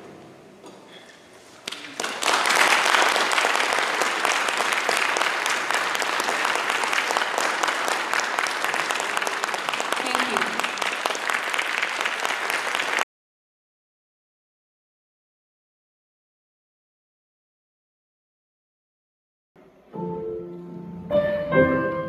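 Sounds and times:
audience applauding: 1.6 - 13.1.

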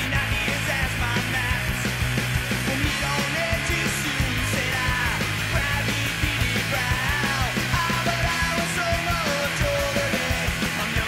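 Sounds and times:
rock music with singing: 0.0 - 11.0.

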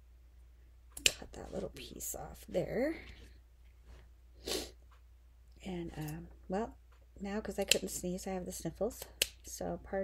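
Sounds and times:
person sniffing sharply: 4.4 - 4.8.

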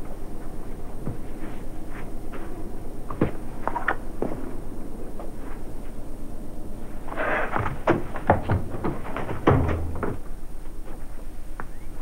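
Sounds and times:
sharp knocks and thumps: 7.5 - 10.3.

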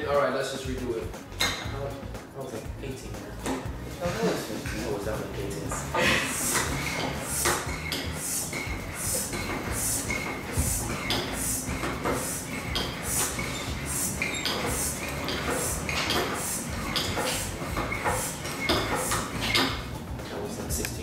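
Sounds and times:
hand air pump strokes hissing: 4.8 - 20.0.

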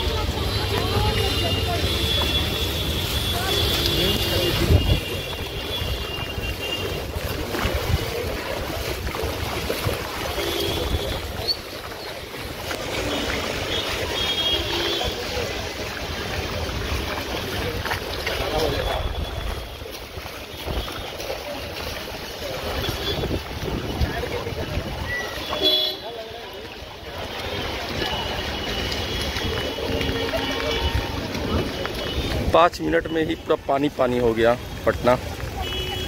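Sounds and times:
footsteps splashing through water: 0.0 - 36.0
people's voices: 0.0 - 36.0.

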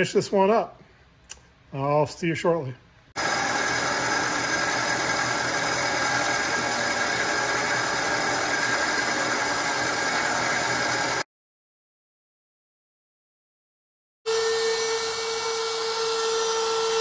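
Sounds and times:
milling machine cutting metal: 3.2 - 11.2.

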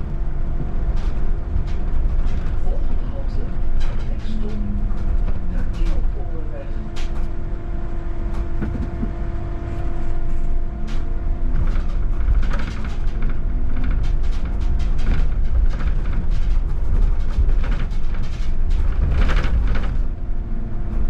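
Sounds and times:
bus road rumble: 0.0 - 21.0
rattles and clicks: 0.0 - 21.0.

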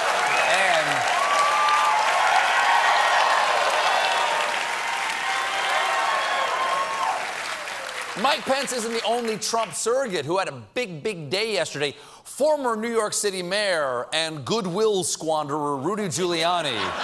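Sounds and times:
audience applauding: 0.0 - 9.7.

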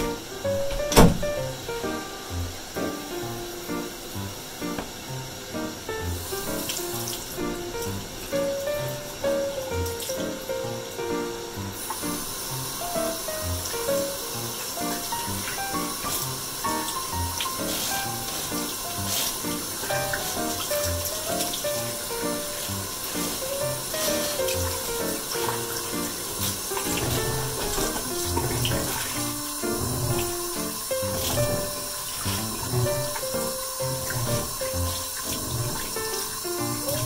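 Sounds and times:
light stepping background music: 0.0 - 37.0
water spraying into a basin: 1.4 - 37.0.

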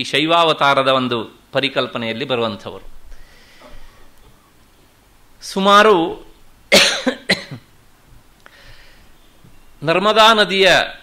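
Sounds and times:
man coughing: 6.7 - 7.7.

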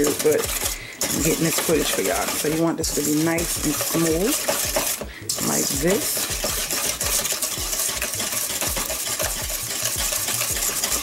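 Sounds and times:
whisk scraping metal bowl: 0.0 - 11.0.

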